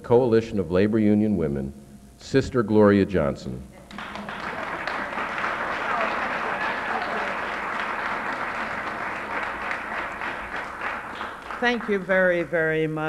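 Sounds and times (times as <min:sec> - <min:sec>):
audience applauding: 0:03.9 - 0:12.8.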